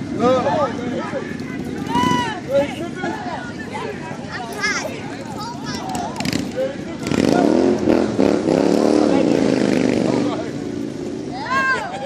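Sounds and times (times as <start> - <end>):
engine revving: 6.2 - 11.3.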